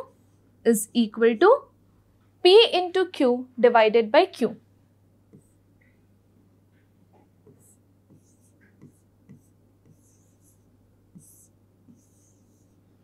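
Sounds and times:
low steady hum: 0.0 - 13.0
pen scratching on touchscreen: 5.3 - 5.6, 7.4 - 13.0.

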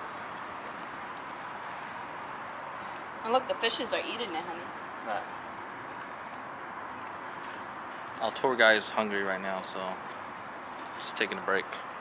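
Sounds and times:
goose pecking on wooden boards: 0.0 - 11.0.

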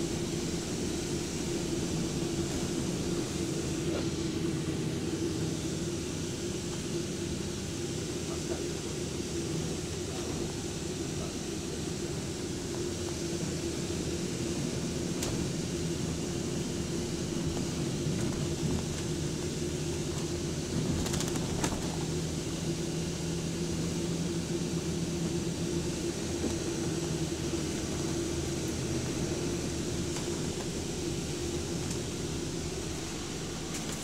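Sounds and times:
bus engine hum: 0.0 - 34.0.

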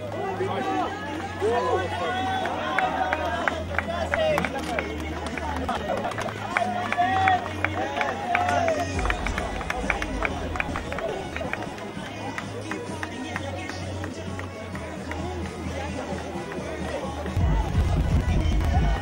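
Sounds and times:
crowd talking and calling out: 0.0 - 19.0.

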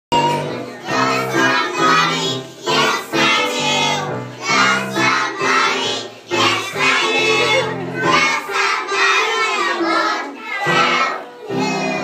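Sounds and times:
children singing together: 0.1 - 12.0.

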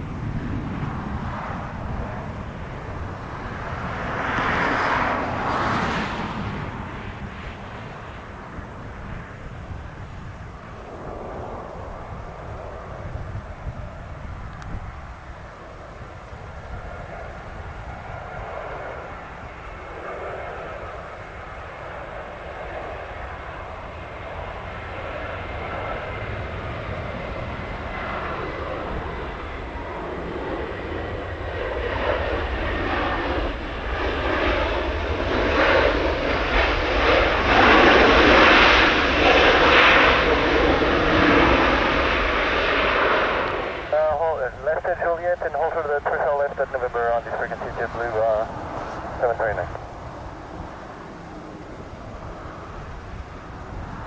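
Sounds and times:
jet airliner engines landing: 0.0 - 54.0.

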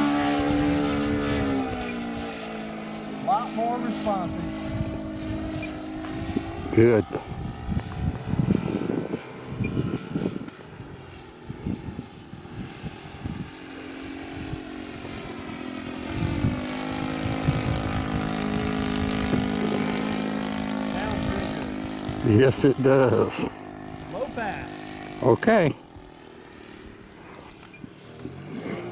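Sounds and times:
model airplane engine drone: 0.0 - 28.9.

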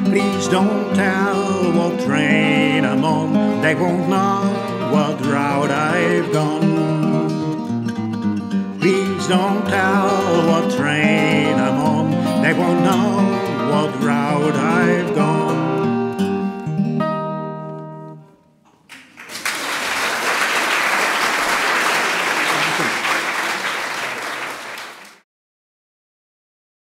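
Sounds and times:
acoustic guitar: 0.0 - 18.9
audience applauding: 18.8 - 25.2.

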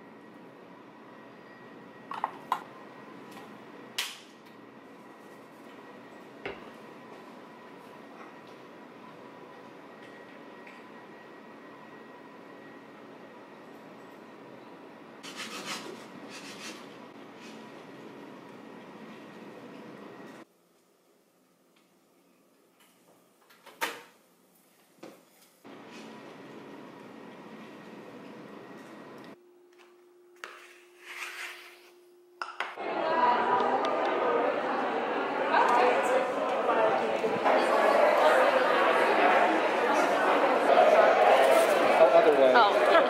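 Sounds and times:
low kitchen hum: 0.0 - 43.0
rubbing and scraping in a kitchen: 15.2 - 17.8, 24.5 - 26.2, 30.4 - 32.2
crowd chatter indoors: 32.8 - 43.0.

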